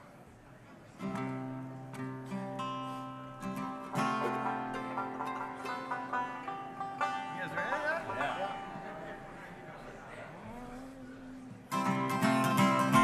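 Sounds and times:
acoustic string instruments tuning: 1.8 - 13.0.

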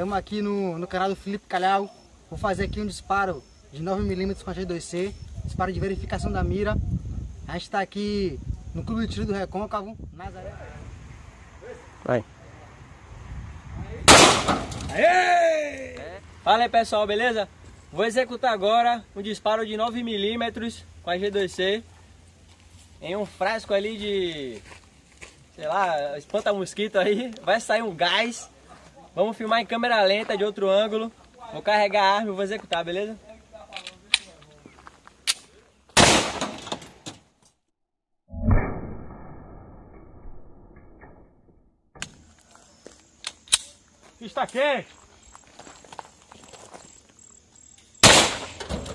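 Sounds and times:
pistol shot with echo: 14.1 - 14.8, 36.0 - 36.8, 48.0 - 48.7
pistol loading clicks: 33.7 - 34.5, 35.2 - 35.5, 43.2 - 43.8.

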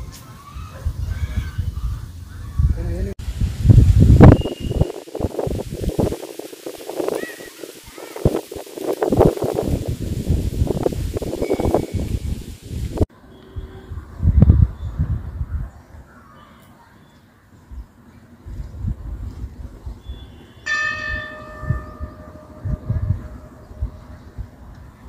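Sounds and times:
wind buffeting microphone: 0.0 - 16.2, 17.7 - 25.0.

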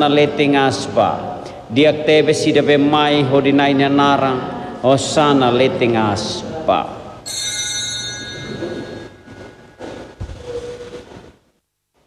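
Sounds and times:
small metal bell ringing: 7.3 - 9.3.

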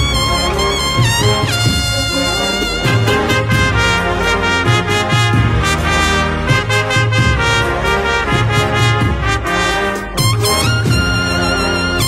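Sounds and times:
brass band processional march: 0.0 - 12.0.

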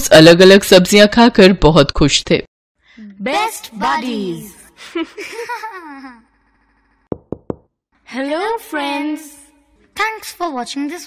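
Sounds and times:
sharp knocks: 7.1 - 7.8.

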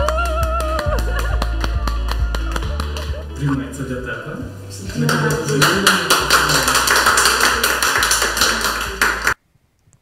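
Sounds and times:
people clapping: 0.0 - 3.6, 4.8 - 9.4
background music with bass: 0.0 - 7.8.

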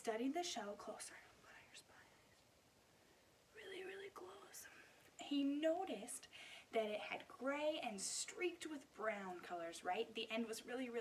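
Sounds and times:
faint whisper: 0.4 - 2.4, 3.5 - 6.8.

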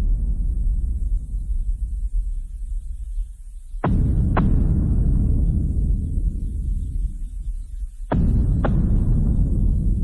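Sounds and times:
low throbbing drone: 0.0 - 10.0.

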